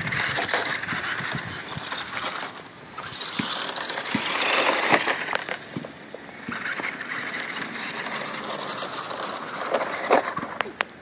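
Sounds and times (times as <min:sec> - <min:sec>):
toy truck electric motor whining: 0:00.0 - 0:05.6, 0:06.3 - 0:10.6
tyres crunching on gravel: 0:00.0 - 0:11.0.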